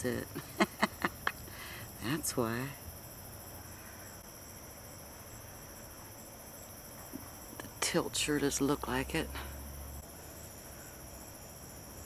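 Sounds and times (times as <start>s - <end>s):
crickets and insects trilling: 0.0s - 12.0s.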